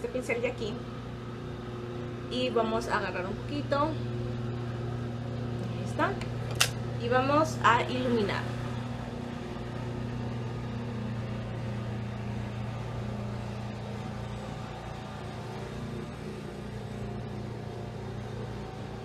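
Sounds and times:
appliance motor humming: 0.0s - 19.0s.

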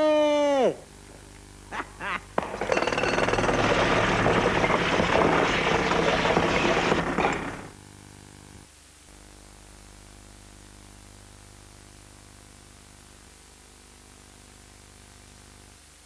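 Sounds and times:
jackhammer hammering: 2.4s - 7.8s.

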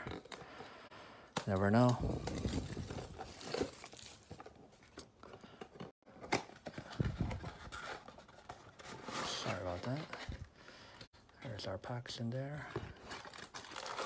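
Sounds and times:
foil packs rustling and crinkling: 1.4s - 10.9s, 12.5s - 14.0s.

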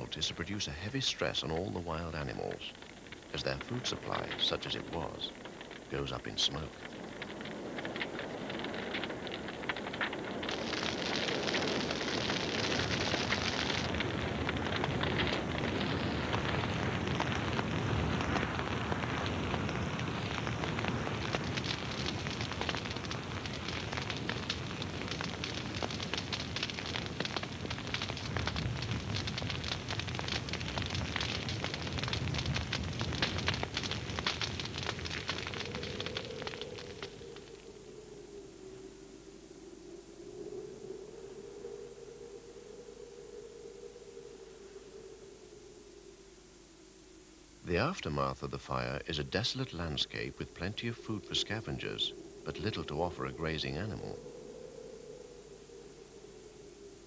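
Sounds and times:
grass fire crackling: 0.0s - 57.0s.

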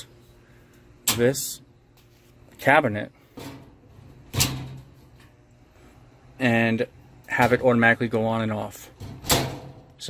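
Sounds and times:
steel cabinet door opening and closing: 3.3s - 5.0s, 8.9s - 9.9s.

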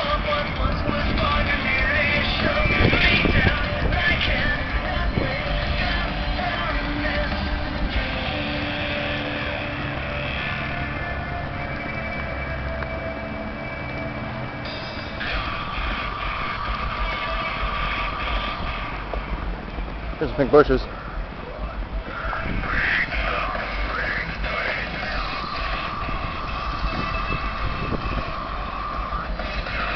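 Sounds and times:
rock music with vocals: 0.0s - 20.1s, 21.1s - 29.9s
wind rumbling on microphone: 0.2s - 8.4s, 15.2s - 29.9s.

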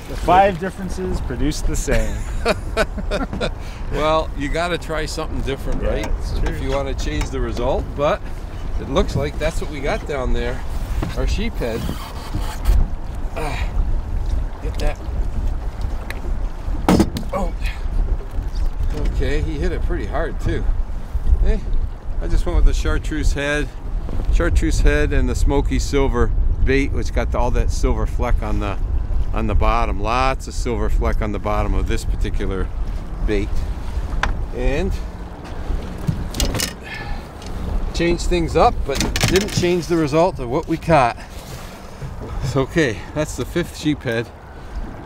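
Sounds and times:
water against a boat hull: 0.0s - 22.5s, 27.8s - 45.0s
wind rumble on microphone: 0.0s - 45.0s
knock of net against boat: 16.8s - 17.3s.

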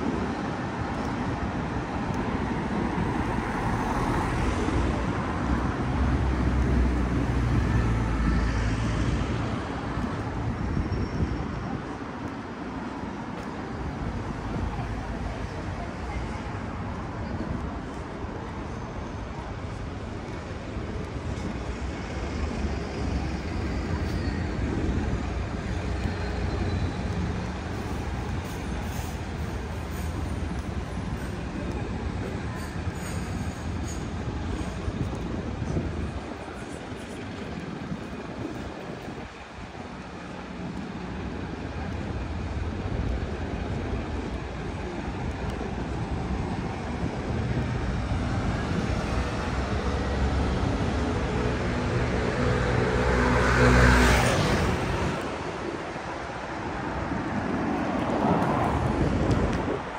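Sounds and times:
road traffic rumble: 0.0s - 59.9s.

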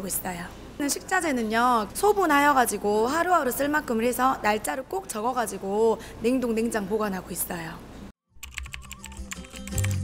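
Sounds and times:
background music: 8.3s - 10.0s
keyboard typing clicks: 8.4s - 10.0s.

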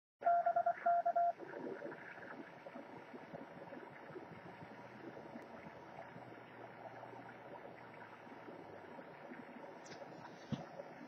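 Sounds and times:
morse code beeping: 0.2s - 1.4s.

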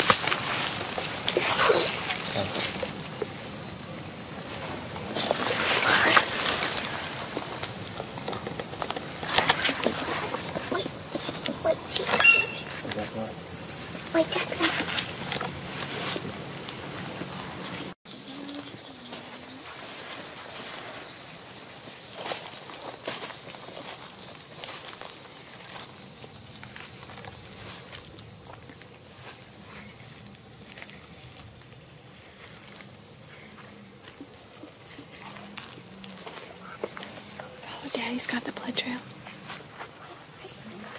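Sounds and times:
high-pitched insect drone: 0.3s - 40.9s
footsteps crunching through dry leaves: 18.6s - 31.6s.

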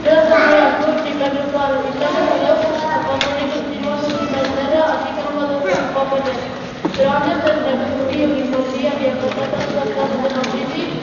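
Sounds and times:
children speaking on stage: 0.0s - 11.0s.

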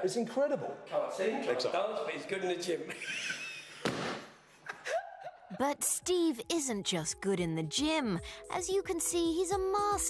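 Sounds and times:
man laughing breathily: 4.6s - 5.5s.

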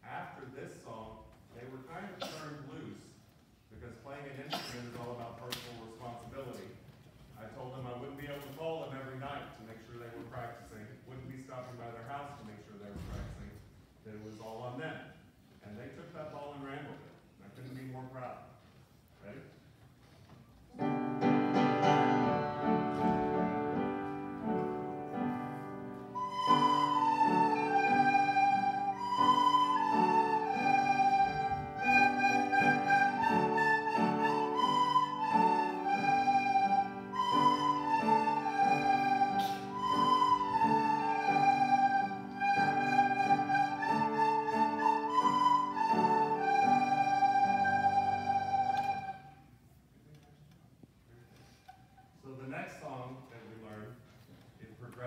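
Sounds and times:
piano accompaniment: 20.7s - 49.3s
children playing recorders: 22.7s - 49.6s.

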